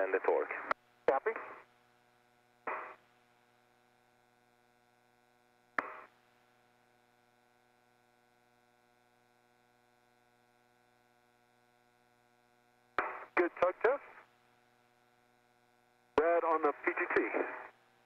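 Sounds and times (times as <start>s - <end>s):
faint radio hum: 0.0s - 1.7s, 13.0s - 15.0s, 16.0s - 17.8s
radio click: 2.7s - 3.0s, 5.8s - 6.1s, 13.0s - 14.0s, 16.2s - 17.6s
bursts of radio noise: 16.2s - 17.7s.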